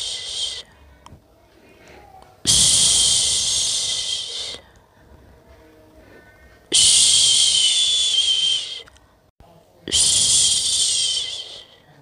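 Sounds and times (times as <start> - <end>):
person shushing: 0.0 - 0.7, 1.9 - 4.6, 9.9 - 12.0.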